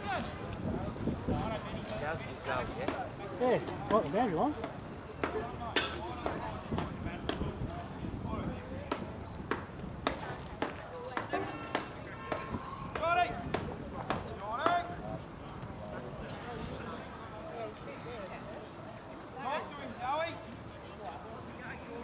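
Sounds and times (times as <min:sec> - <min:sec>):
distant shouted voices: 0:10.7 - 0:18.8.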